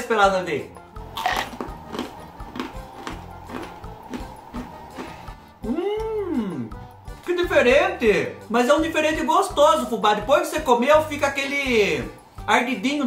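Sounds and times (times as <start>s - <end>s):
background music: 0.0s - 13.0s
cracker crunching while chewed: 1.0s - 5.4s
high pitched rising call: 1.0s - 8.4s.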